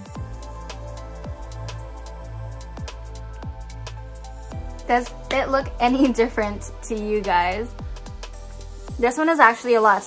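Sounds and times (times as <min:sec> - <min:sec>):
background music with drums: 0:00.0 - 0:09.2.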